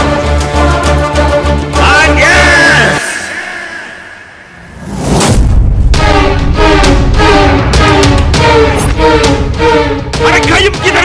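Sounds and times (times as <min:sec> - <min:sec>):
film score music: 0:00.0 - 0:11.0
rising whoosh riser: 0:02.9 - 0:07.6.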